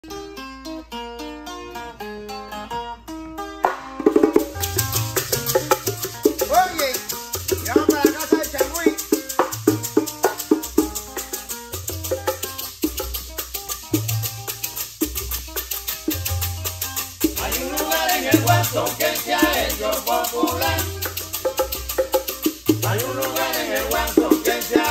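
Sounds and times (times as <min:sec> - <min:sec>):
tres guitar plucking: 0:00.0 - 0:24.9
bongos: 0:03.6 - 0:24.9
maracas: 0:03.6 - 0:24.9.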